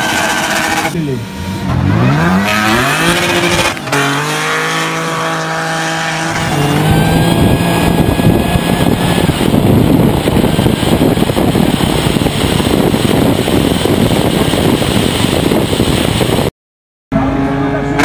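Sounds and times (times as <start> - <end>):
race car engine revving: 0.0 - 16.5
wind rush: 1.8 - 16.5.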